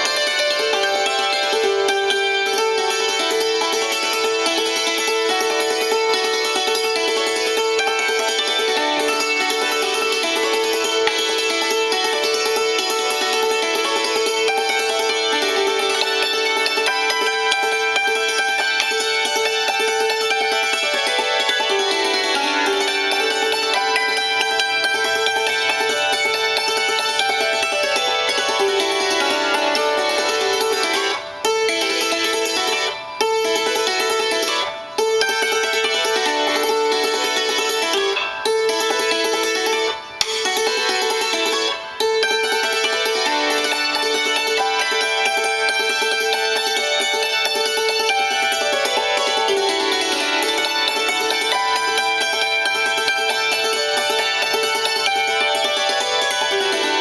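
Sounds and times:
hammered dulcimer playing: 0.0 - 57.0.

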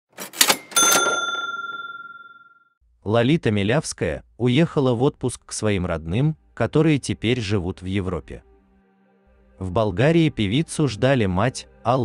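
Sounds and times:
bright bell-like ding: 0.6 - 2.5.

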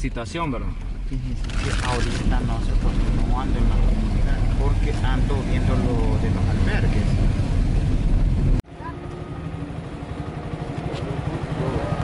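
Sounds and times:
quiet low rumble: 0.0 - 8.6
road noise inside car: 0.0 - 12.0.

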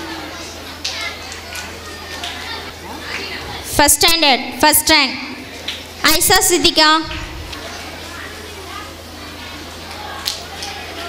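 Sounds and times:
children chattering: 0.0 - 3.8, 4.8 - 11.0
low steady hum: 3.7 - 7.8.

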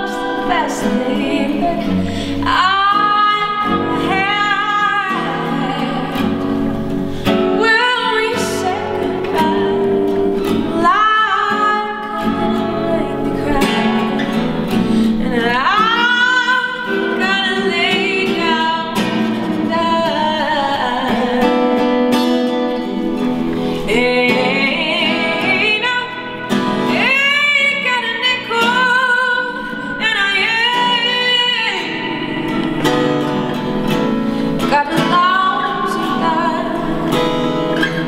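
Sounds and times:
acoustic guitar: 0.0 - 38.0
woman singing blues: 0.0 - 38.0.

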